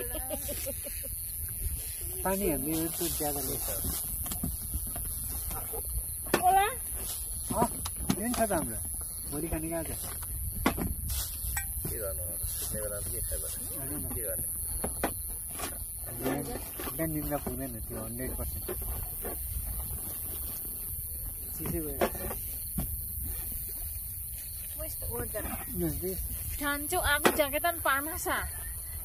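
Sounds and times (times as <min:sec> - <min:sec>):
steady high hiss: 0:00.0 - 0:05.5
people talking casually: 0:02.0 - 0:04.0, 0:05.4 - 0:10.2, 0:11.6 - 0:14.9, 0:16.0 - 0:19.0, 0:24.7 - 0:28.9.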